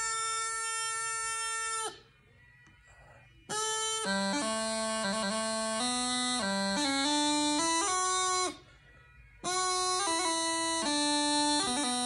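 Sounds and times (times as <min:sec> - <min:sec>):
bagpipe chanter long note: 0:00.0 - 0:02.1, 0:03.4 - 0:08.8, 0:09.4 - 0:12.0.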